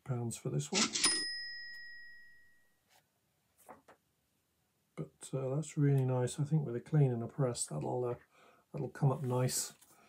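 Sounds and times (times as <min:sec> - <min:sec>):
bright bell ding: 0:01.0 - 0:02.7.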